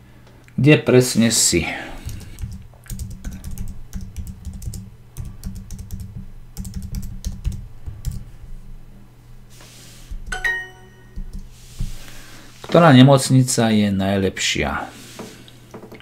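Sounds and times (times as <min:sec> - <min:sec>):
typing on computer keyboard: 0:02.0 - 0:08.2
short multi-note chime: 0:10.3 - 0:11.2.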